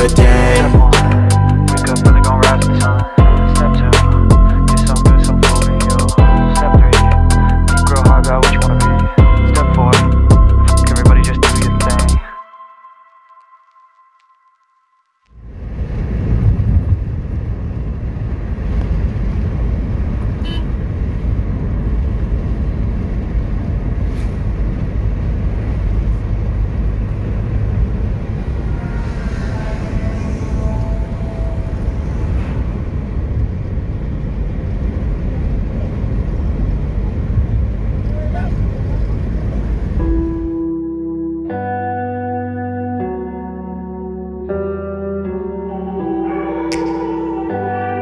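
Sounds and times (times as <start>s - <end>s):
car road and wind noise: 15.3s - 41.5s
faint pitched sound: 27.7s - 33.8s.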